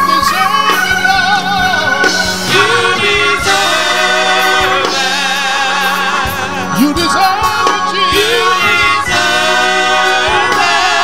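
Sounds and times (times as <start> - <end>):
choir singing gospel: 0.0 - 11.0
musical accompaniment: 0.0 - 11.0.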